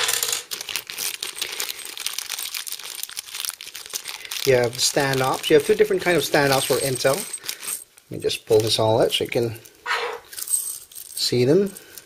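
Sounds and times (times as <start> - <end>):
small metal parts shifting: 0.0 - 8.9, 9.9 - 12.0
plastic bag crinkling: 0.0 - 9.4.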